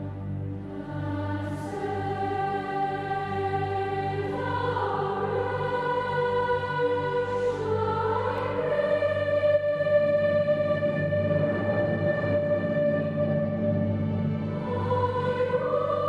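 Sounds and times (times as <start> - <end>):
low steady accompaniment: 0.0 - 16.0
children's choir singing: 0.7 - 16.0.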